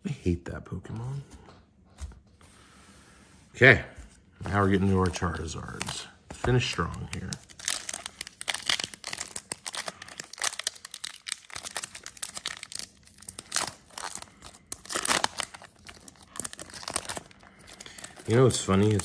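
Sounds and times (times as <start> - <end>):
foil wrapper crinkling: 4.6 - 19.0.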